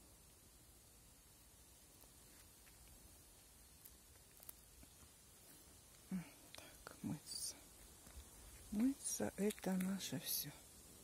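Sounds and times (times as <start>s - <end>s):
woman whispering: 6.1s - 7.7s, 8.7s - 10.6s.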